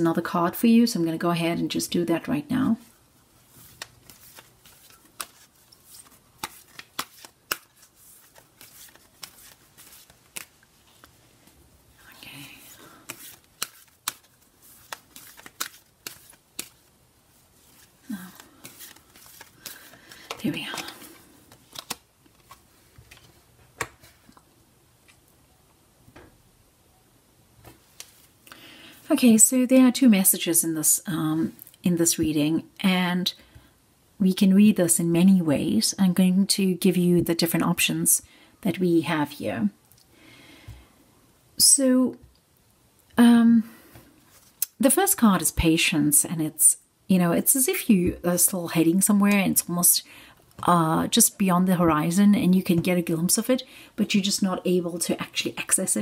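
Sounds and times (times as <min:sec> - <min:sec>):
cards shuffling by hand: 0:03.4 - 0:11.6, 0:12.4 - 0:24.4, 0:27.6 - 0:28.4, 0:44.3 - 0:44.7
card edges clicking and flicking: 0:03.7 - 0:10.6, 0:13.0 - 0:16.9, 0:17.7 - 0:22.6.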